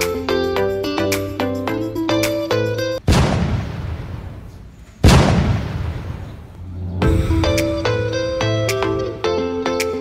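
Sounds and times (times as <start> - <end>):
cannon boom: 3.0 - 8.4.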